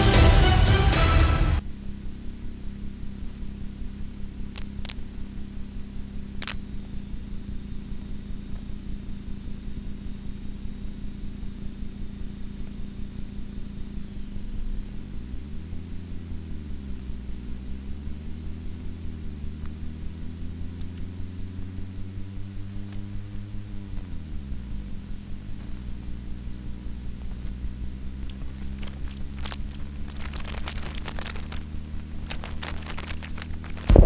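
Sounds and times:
vehicle engine humming: 0.0s - 34.0s
sharp clicks: 6.4s - 6.7s.

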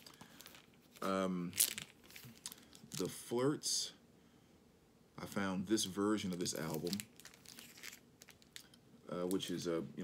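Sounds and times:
plastic sleeve crinkling: 0.0s - 3.2s, 6.3s - 9.6s.

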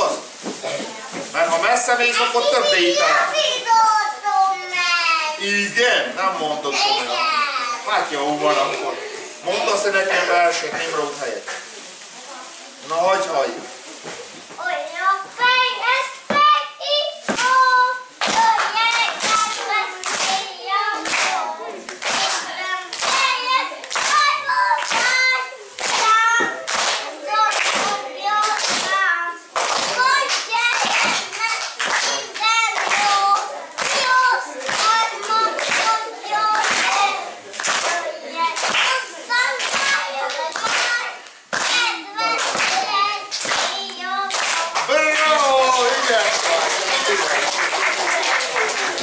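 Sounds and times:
child reciting verse: 2.2s - 5.4s, 6.7s - 7.9s, 14.6s - 44.9s
child's high voice: 2.4s - 5.4s, 6.8s - 7.9s, 14.6s - 21.0s
hand claps: 18.2s - 39.0s, 39.6s - 49.0s.

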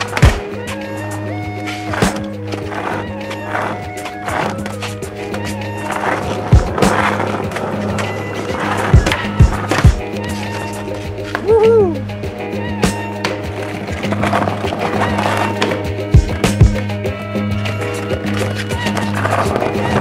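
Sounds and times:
skateboard snapping and landing: 0.0s - 0.8s, 4.0s - 10.6s
skateboard wheels rolling on concrete: 0.0s - 20.0s.

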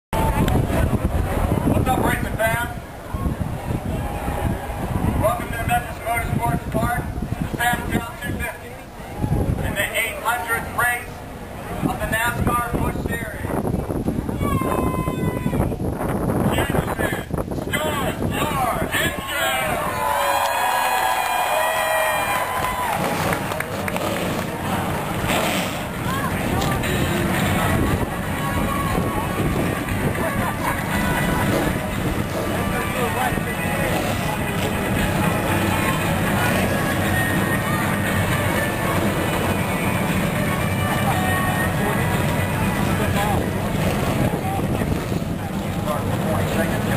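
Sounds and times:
crowd cheering: 0.1s - 1.4s, 19.1s - 43.4s
stock car engines rumbling: 15.8s - 46.9s.

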